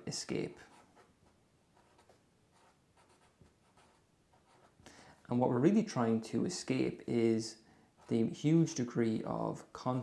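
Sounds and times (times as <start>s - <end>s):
marker scratching on paper: 0.6s - 4.8s, 8.0s - 8.4s.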